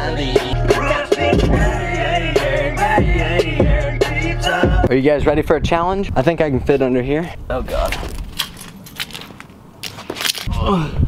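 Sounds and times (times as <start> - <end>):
shoes stepping on concrete: 7.6 - 10.6.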